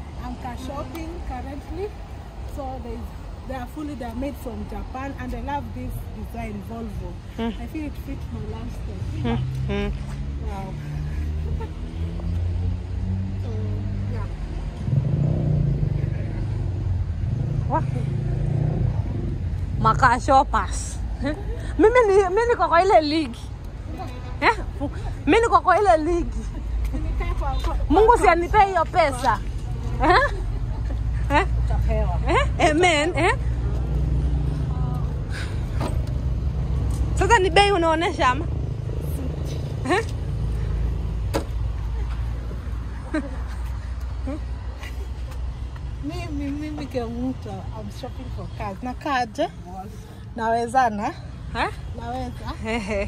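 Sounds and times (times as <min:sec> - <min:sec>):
vehicle engine humming: 0:00.0 - 0:53.0.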